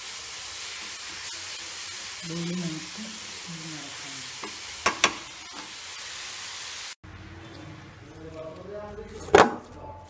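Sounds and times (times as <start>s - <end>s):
filling sizzling in a pan: 0.0s - 7.0s.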